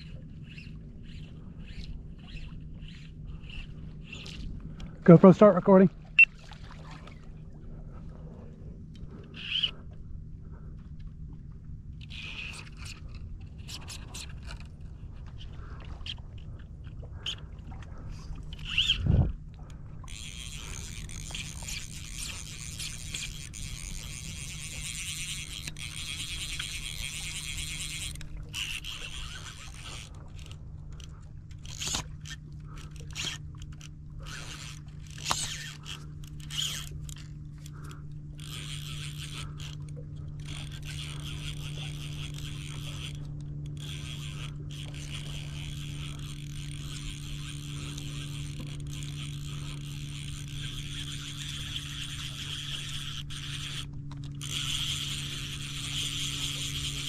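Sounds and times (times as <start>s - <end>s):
fly reel being worked: 0.0s - 4.6s, 9.3s - 9.8s, 12.0s - 16.2s, 18.1s - 19.1s, 20.0s - 57.0s
fly reel clicking: 0.0s - 5.4s, 9.3s - 9.8s, 12.0s - 16.2s, 18.5s - 57.0s.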